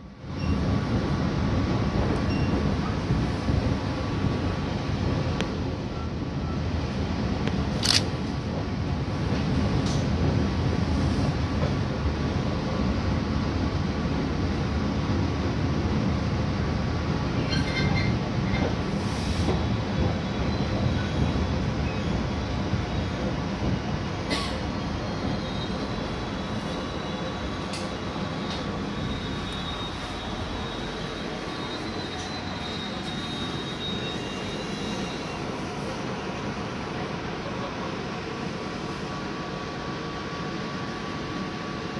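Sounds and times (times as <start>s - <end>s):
train wheels rumbling on rails: 0.0s - 41.9s
high wheel squeal: 28.3s - 35.6s.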